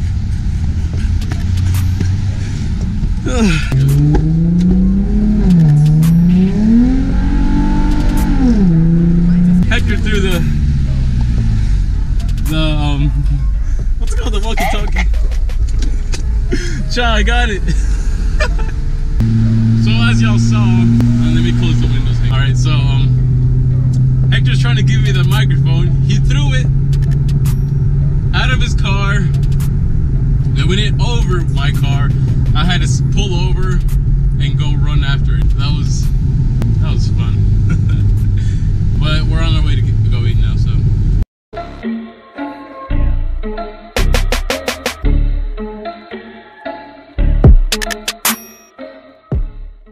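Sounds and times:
car cabin road rumble: 0.0s - 41.2s
person laughing: 3.3s - 3.8s, 14.1s - 16.9s, 17.6s - 18.8s, 37.6s - 38.6s
man's voice: 9.2s - 10.6s, 12.4s - 15.2s, 19.8s - 23.2s, 24.3s - 26.7s, 30.5s - 36.1s, 36.7s - 40.8s
sharp clicks: 26.9s - 27.6s.

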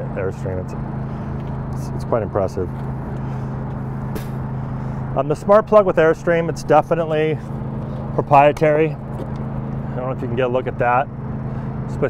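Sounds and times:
idling engine hum: 0.0s - 12.0s.

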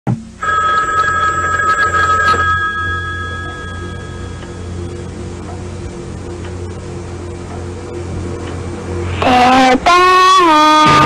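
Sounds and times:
telephone bell ringing: 0.4s - 4.8s.

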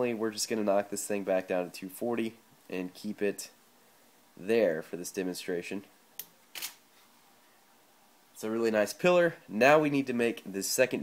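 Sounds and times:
camera shutter clicking: 6.5s - 6.8s.

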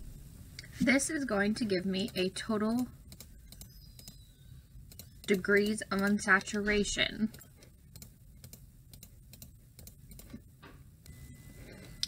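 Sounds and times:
keyboard typing clicks: 3.1s - 4.3s, 4.9s - 6.6s, 7.3s - 10.4s.

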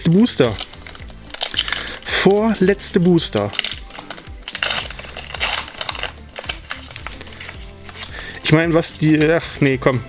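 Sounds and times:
foil wrapper crinkling: 0.0s - 9.6s.

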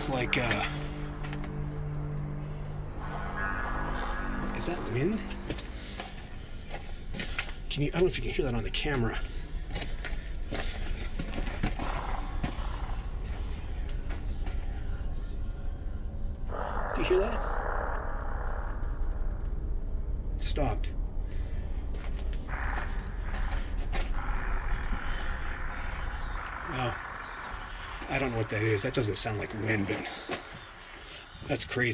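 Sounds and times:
steady low rumble: 0.0s - 31.9s.

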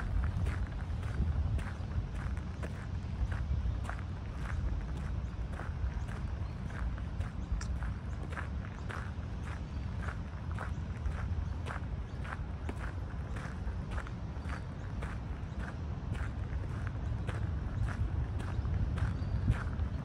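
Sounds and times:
low rumble: 0.0s - 5.2s
footsteps on a path: 0.0s - 20.0s.

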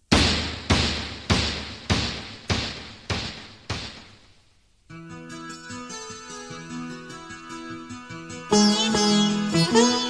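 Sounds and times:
sharp percussive hit with echo: 0.0s - 4.3s.

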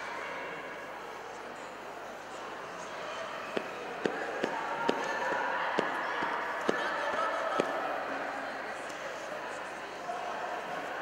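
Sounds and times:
sports hall background noise: 0.0s - 11.0s.

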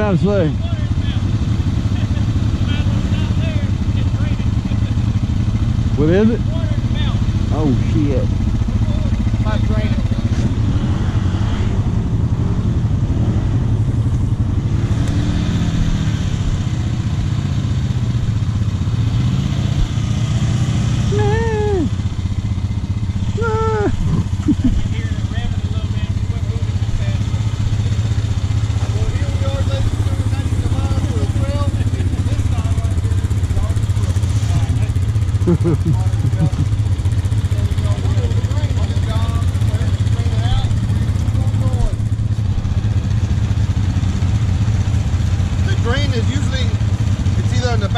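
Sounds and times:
atv engines droning: 0.0s - 47.9s.

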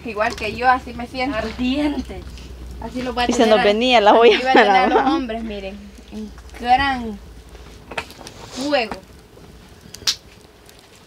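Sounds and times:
sharp snap: 10.0s - 10.3s.

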